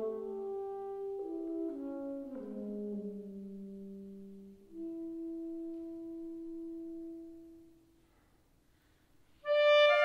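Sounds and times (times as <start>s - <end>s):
soprano saxophone: 0.0s - 7.6s, 9.4s - 10.0s.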